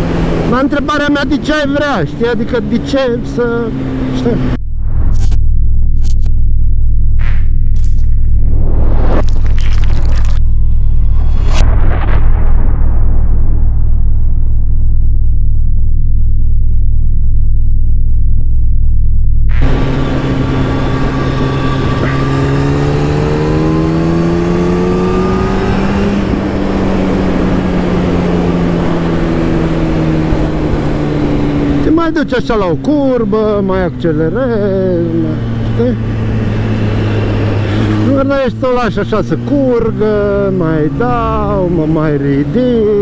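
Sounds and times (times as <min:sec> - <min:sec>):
motorcycle engine accelerating: 0:00.0 - 0:11.6, 0:13.8 - 0:43.0
electronic music with deep bass: 0:04.6 - 0:11.6
wind noise on microphone: 0:24.9 - 0:31.8.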